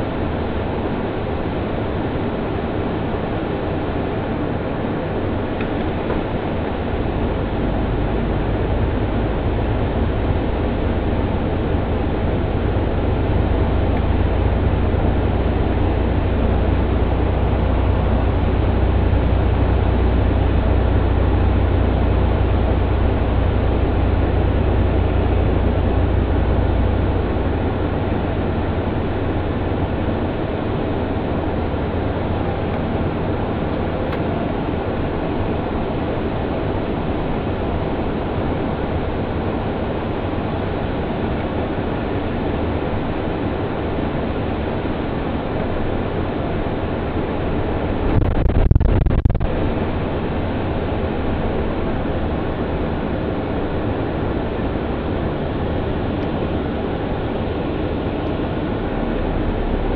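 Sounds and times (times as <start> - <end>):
bus road and engine noise: 0.0 - 59.9.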